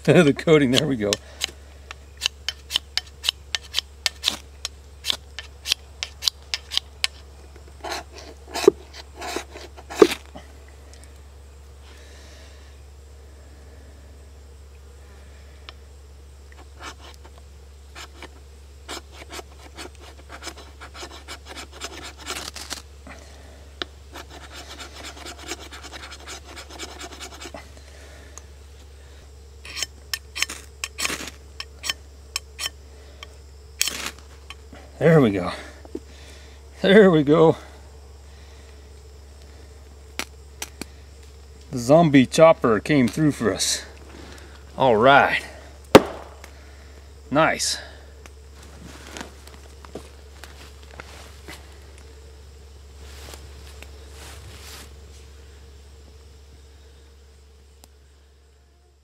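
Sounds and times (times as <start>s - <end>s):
knife spine scraping ferro rod: 2.2s - 7.2s, 7.8s - 10.3s, 16.5s - 17.4s, 18.0s - 22.8s, 24.1s - 27.6s, 29.6s - 32.0s, 32.6s - 34.6s.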